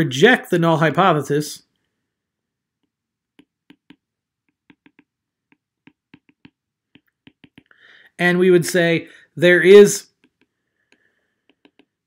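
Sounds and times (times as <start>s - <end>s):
stylus tapping on glass screen: 3.3s - 7.7s.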